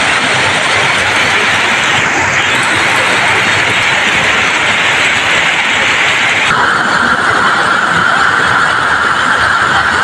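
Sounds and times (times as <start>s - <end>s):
heavy rain hissing: 0.0s - 10.0s
vehicles driving through flood water: 0.0s - 10.0s.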